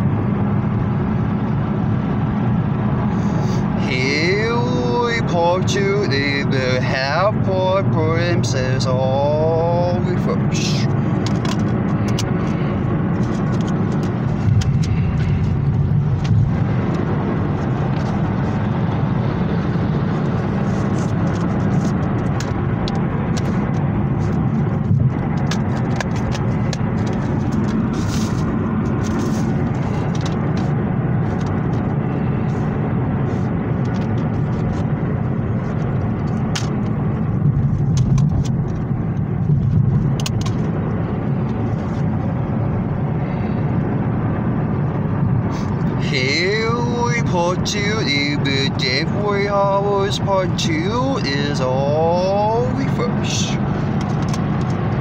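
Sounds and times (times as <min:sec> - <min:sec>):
car cabin rumble: 0:00.0 - 0:55.0.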